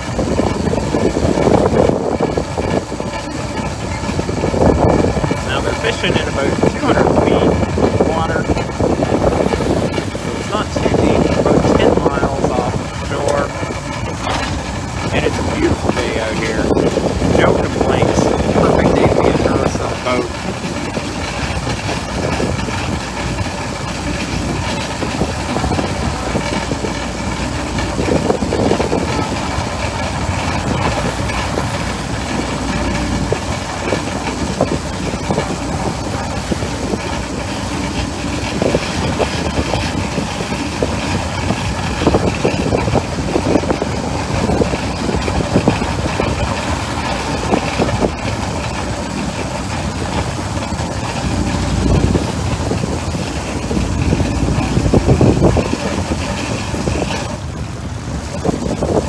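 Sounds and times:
boat engine running: 0.0 - 59.0
wind noise on microphone: 0.0 - 59.0.

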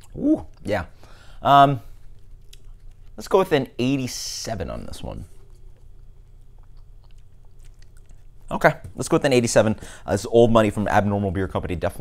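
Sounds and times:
mouth clicks and lip smacks: 2.1 - 3.2, 5.3 - 8.3.

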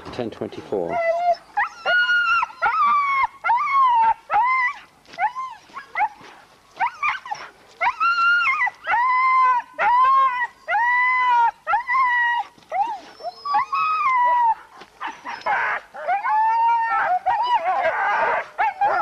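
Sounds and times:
dogs howling and yelping: 0.7 - 19.0.

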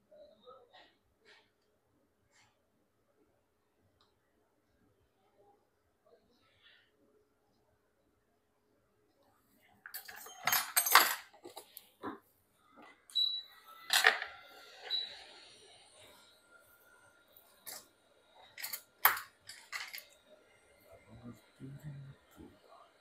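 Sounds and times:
small tools clicking and clattering: 9.8 - 12.2, 13.8 - 15.0, 17.4 - 20.2.

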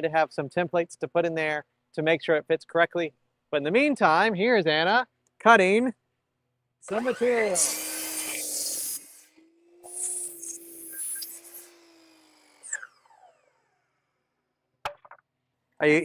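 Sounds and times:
miter saw cutting wood: 6.9 - 14.3.

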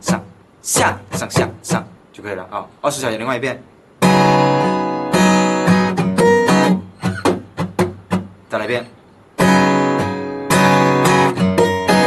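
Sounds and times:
acoustic guitar strumming: 0.0 - 2.0, 4.0 - 12.0.

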